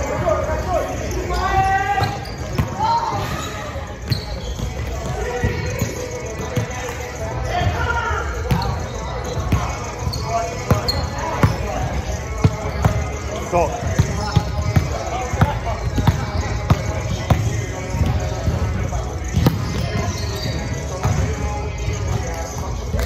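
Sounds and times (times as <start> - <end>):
players' voices: 0.0 - 23.0.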